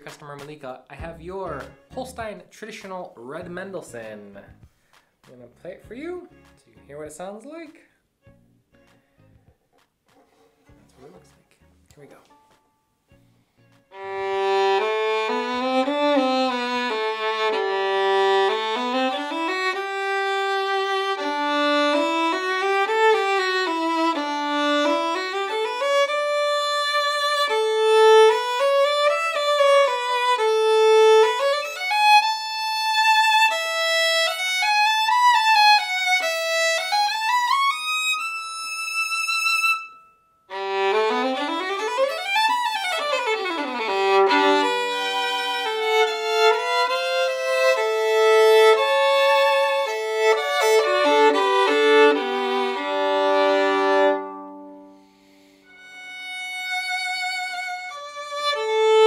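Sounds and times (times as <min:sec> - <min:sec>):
solo violin with vibrato: 0:13.9 - 0:59.0.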